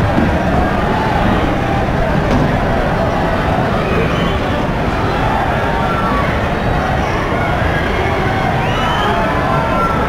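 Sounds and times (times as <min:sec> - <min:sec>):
hubbub of large crowd: 0:00.0 - 0:10.0.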